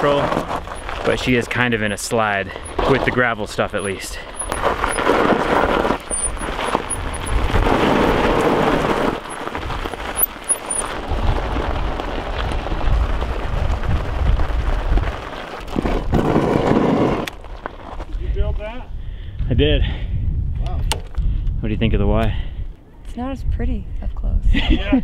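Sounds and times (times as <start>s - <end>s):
tires crunching on gravel: 0.0s - 18.9s.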